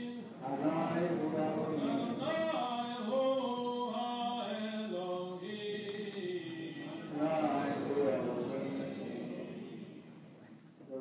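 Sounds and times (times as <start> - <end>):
men chanting a prayer: 0.0 - 10.2.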